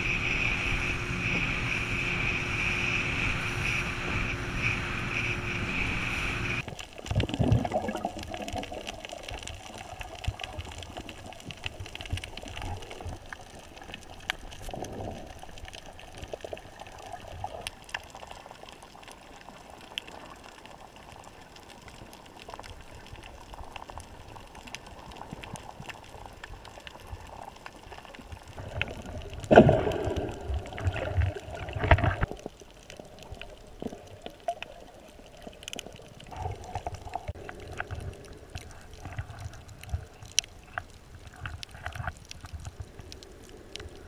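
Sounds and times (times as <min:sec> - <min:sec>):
motorboat engine: 0:00.0 - 0:06.6
wind noise: 0:00.0 - 0:06.6
muffled underwater water movement: 0:00.0 - 0:44.0
faint clicks: 0:31.8 - 0:44.0.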